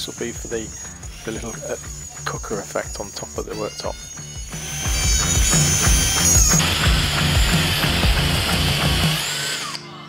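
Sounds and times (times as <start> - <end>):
router whining cutting plywood: 0.0 - 9.8
background music with steady beat: 0.0 - 10.0.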